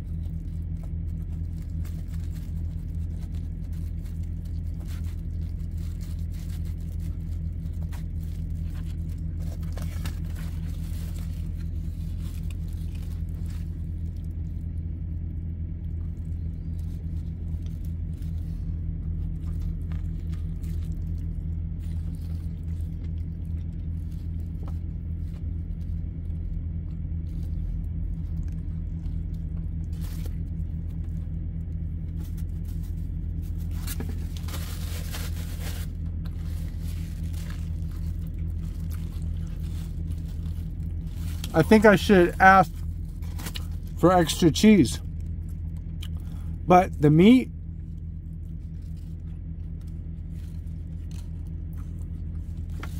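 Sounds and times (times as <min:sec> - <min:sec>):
paper wrapper crinkling: 0:00.0 - 0:14.9, 0:16.0 - 0:46.3, 0:47.2 - 0:52.9
low mechanical hum: 0:00.0 - 0:52.9.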